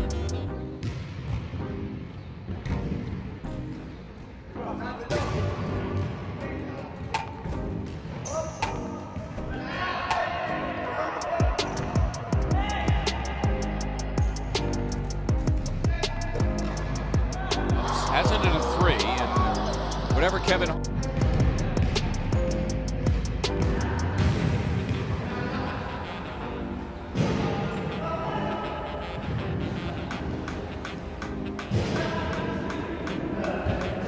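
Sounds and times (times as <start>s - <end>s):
background music: 0.0s - 34.0s
basketball bouncing on court: 0.7s - 1.8s.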